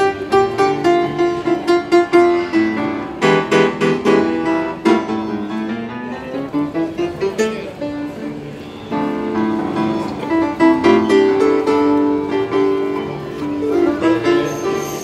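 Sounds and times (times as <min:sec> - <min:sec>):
grand piano playing: 0:00.0 - 0:15.0.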